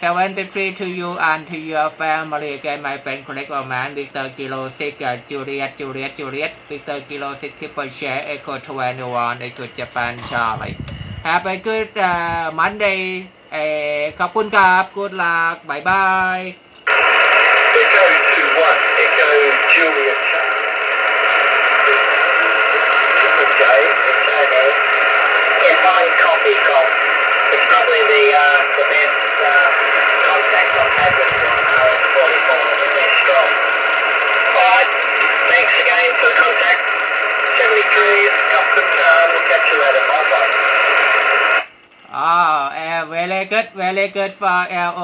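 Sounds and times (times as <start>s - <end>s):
loud steady radio hiss: 0.0s - 45.0s
thin radio voice: 21.3s - 33.7s.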